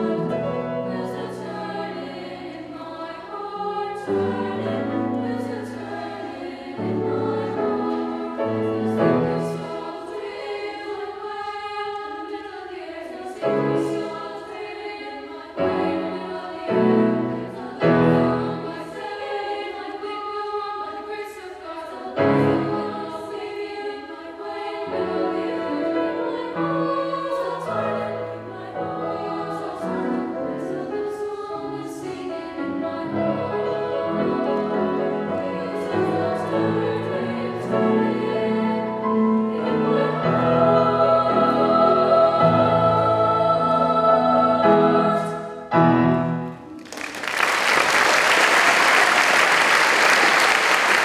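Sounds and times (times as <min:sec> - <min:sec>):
choir singing: 0:00.0 - 0:51.0
grand piano accompaniment: 0:00.0 - 0:51.0.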